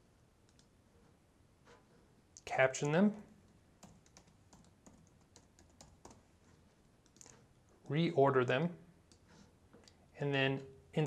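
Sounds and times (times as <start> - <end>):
keyboard typing: 3.8 - 6.3, 7.0 - 7.4.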